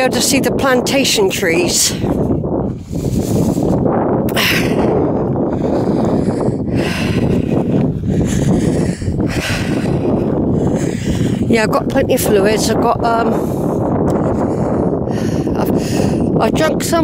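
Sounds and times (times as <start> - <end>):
wind rumbling on microphone: 0.0 - 17.0.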